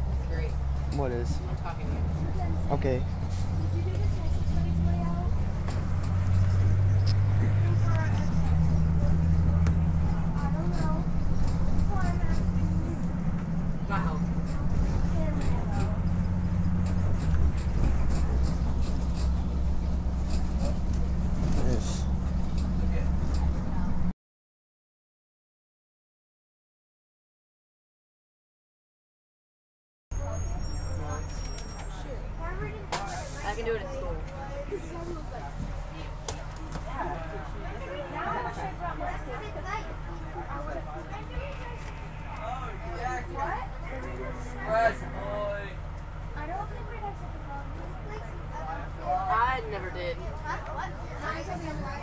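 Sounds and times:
bus engine drone: 0.0s - 24.2s, 30.1s - 52.0s
passengers talking faintly: 0.2s - 16.3s, 16.9s - 24.1s, 30.2s - 52.0s.

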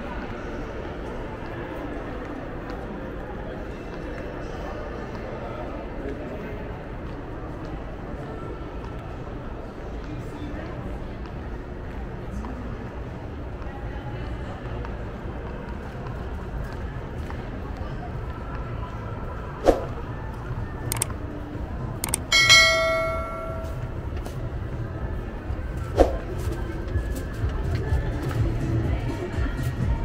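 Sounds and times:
click: 20.9s - 21.2s, 22.0s - 22.3s
bell-like ding: 22.0s - 23.9s.

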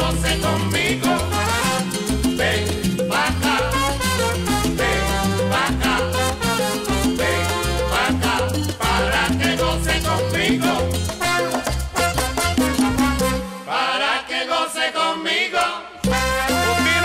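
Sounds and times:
bass line: 0.0s - 13.5s, 16.0s - 17.0s
salsa band playing: 0.0s - 13.9s, 16.0s - 17.0s
latin percussion: 0.0s - 17.0s
trumpet lines: 1.2s - 2.2s, 3.7s - 8.2s, 11.2s - 13.9s, 16.0s - 17.0s.

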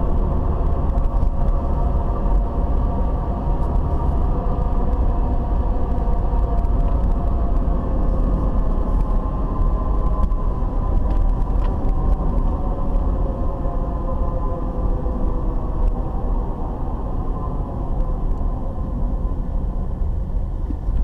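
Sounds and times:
car engine and road rumble: 0.0s - 21.0s.

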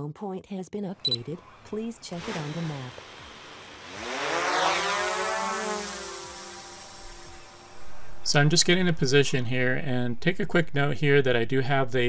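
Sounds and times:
drone propellers buzzing: 1.2s - 9.0s.

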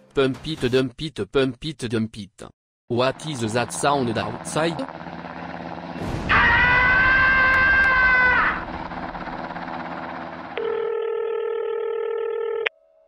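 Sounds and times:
explosion rumble: 5.9s - 7.8s
man screaming: 6.3s - 8.7s
steady telephone tone: 10.6s - 13.0s.

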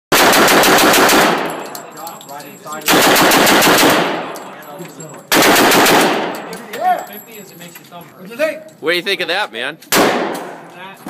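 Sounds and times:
submachine gun automatic burst: 0.2s - 1.4s, 2.9s - 4.1s, 5.3s - 6.2s.

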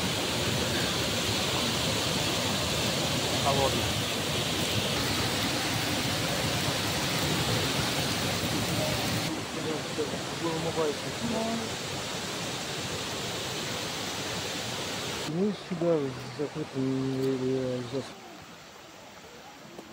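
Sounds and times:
stream running over stones: 0.0s - 19.9s.

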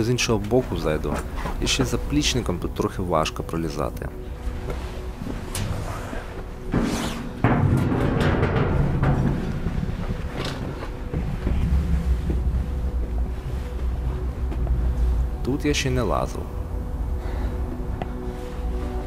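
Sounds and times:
footsteps on steel ladder: 7.4s - 14.8s.

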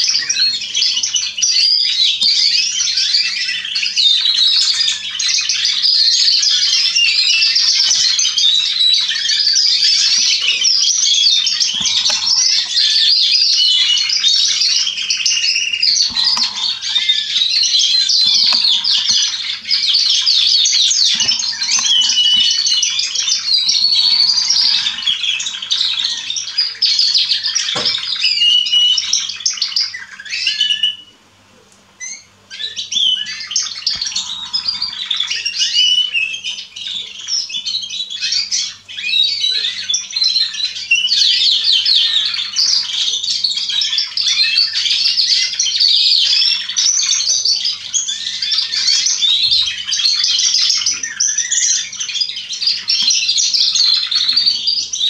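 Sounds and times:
canaries singing trills: 0.0s - 55.0s.

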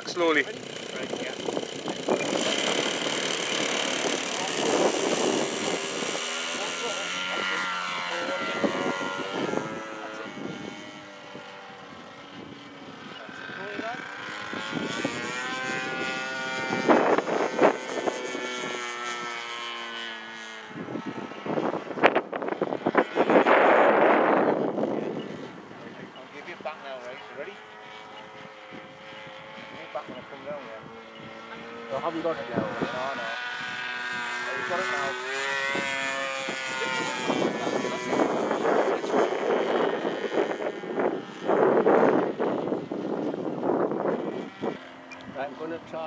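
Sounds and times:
model plane engine and propeller: 0.0s - 46.0s.

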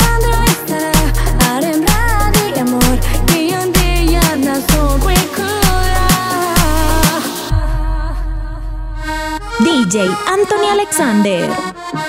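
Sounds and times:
electronic dance music: 0.0s - 7.6s, 9.3s - 12.0s.

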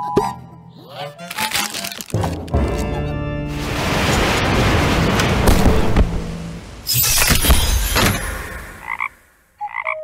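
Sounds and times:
cartoon crashing and tumbling: 6.8s - 9.1s
frog-like croaks: 8.8s - 10.0s.

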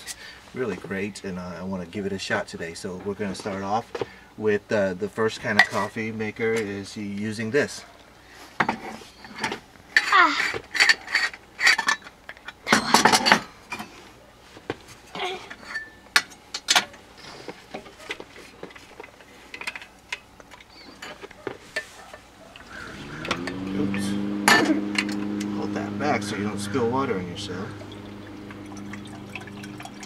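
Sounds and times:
lawnmower engine droning: 22.5s - 30.0s.

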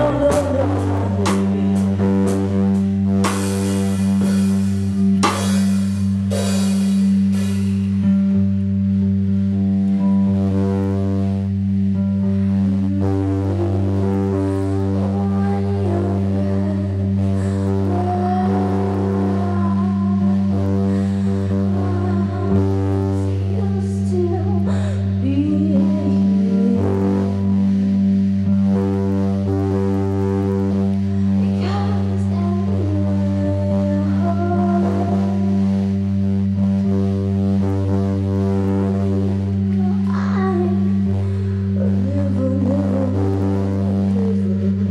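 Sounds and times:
person singing: 0.0s - 5.7s, 12.0s - 30.0s, 30.6s - 36.9s, 38.4s - 44.9s
held low drone tone: 0.0s - 44.9s
live band droning piece: 0.0s - 44.9s.

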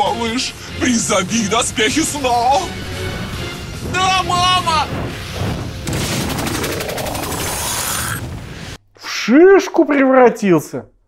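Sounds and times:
rising sweep: 5.0s - 8.4s.

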